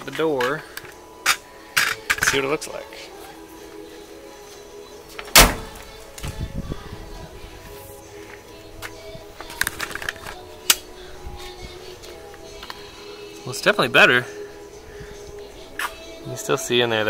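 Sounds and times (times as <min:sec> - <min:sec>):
background music: 0:00.0 - 0:17.0
car door thudding shut: 0:05.3 - 0:05.8.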